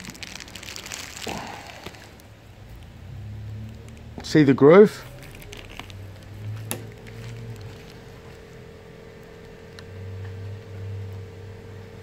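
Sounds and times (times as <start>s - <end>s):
plastic sheeting crinkling: 0.0s - 2.8s, 4.8s - 8.6s
plastic crackling and clicking: 0.0s - 2.9s, 3.6s - 4.4s, 5.0s - 8.5s.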